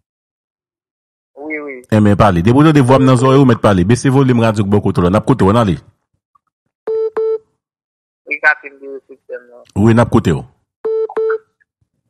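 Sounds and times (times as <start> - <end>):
short electronic beeps: 6.9 - 7.5, 10.8 - 11.6.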